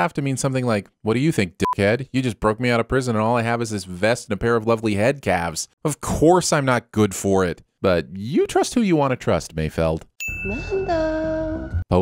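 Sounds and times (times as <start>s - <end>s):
bell-like ding: 10.2s - 11.4s.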